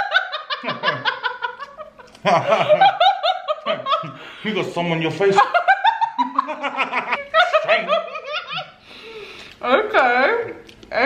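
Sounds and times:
woman and man laughing: 0:00.0 - 0:04.3, 0:05.4 - 0:08.8.

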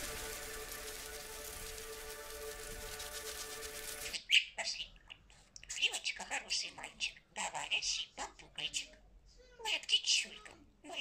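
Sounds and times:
instrumental music with held tones: 0:00.0 - 0:04.1.

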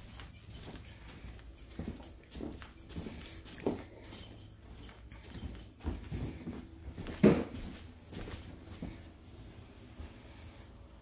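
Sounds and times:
footsteps on carpet: 0:00.0 - 0:09.2
steady low hum: 0:00.0 - 0:11.0.

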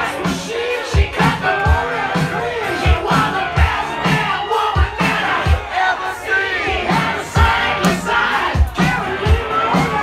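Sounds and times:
crowd shouting and singing along: 0:00.0 - 0:10.0
loud dance music with deep beat: 0:00.0 - 0:10.0.

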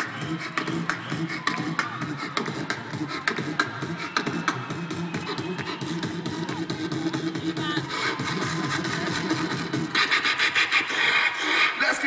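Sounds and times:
beatboxing through speakers: 0:00.0 - 0:12.0.

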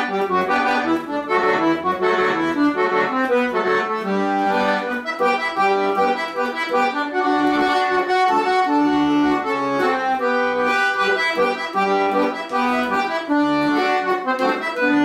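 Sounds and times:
piano accordion melody: 0:00.0 - 0:15.0.

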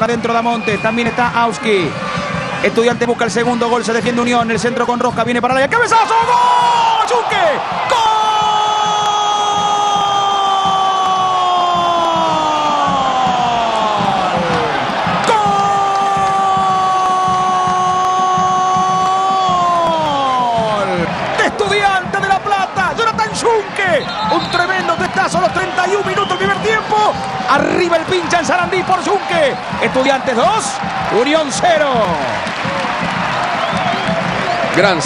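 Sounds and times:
crowd noise: 0:00.0 - 0:35.0
commentator shouting goal: 0:02.7 - 0:32.4.

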